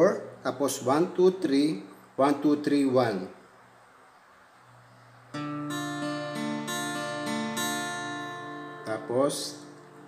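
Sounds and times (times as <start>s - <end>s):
acoustic guitar fingerpicking: 5.3s - 10.0s.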